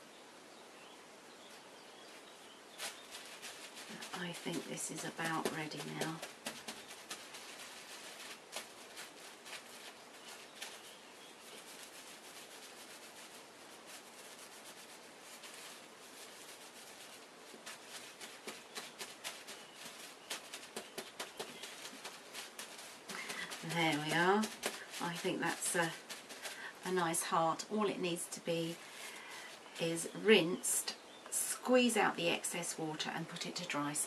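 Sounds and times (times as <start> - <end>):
bubble wrap rustling and crackling: 1.5 - 31.0.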